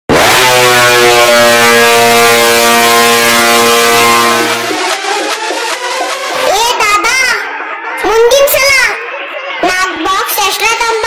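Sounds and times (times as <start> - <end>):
loud horn blast: 0.1 - 6.5.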